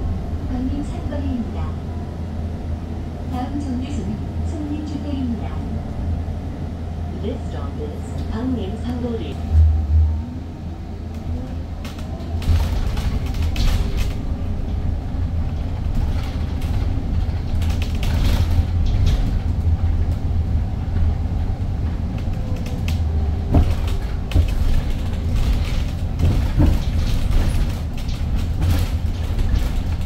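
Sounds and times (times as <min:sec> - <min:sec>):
bus road rumble: 0:00.0 - 0:30.0
rattles and creaks: 0:11.1 - 0:30.0.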